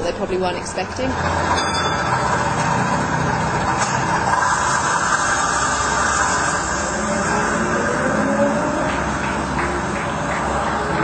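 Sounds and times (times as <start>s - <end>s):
road noise: 0.0s - 11.0s
vehicle engine running: 0.6s - 11.0s.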